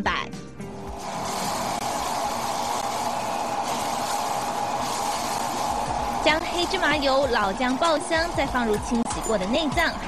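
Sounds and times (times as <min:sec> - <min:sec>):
food sizzling in a wok: 0:00.9 - 0:07.4.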